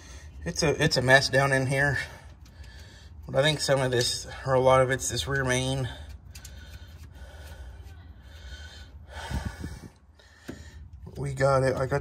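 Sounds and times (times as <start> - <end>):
man breathing hard: 6.0 - 11.0.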